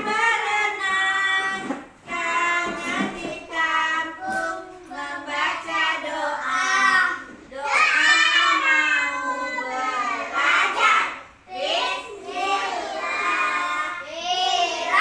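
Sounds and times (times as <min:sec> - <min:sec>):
children singing in chorus: 0:00.0 - 0:15.0.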